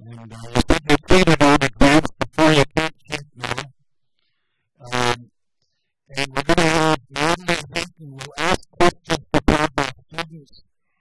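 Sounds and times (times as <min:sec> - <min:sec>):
man speaking into a microphone: 0:00.0 - 0:03.7, 0:04.8 - 0:05.2, 0:06.1 - 0:10.6.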